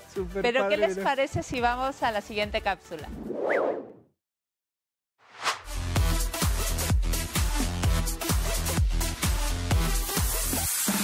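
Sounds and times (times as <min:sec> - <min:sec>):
whoosh sound effect: 0:03.1 - 0:04.0, 0:05.3 - 0:05.7
rising and falling tone: 0:03.2 - 0:04.0.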